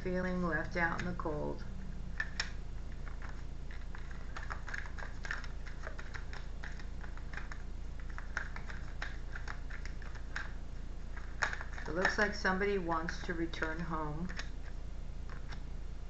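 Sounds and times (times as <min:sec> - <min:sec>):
steady low hum: 0:00.0 - 0:16.0
cards being shuffled: 0:02.1 - 0:15.7.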